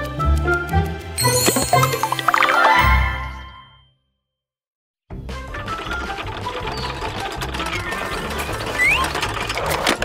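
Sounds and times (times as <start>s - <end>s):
background music: 0.0s - 3.8s
rapid mechanical whirring: 5.4s - 10.0s.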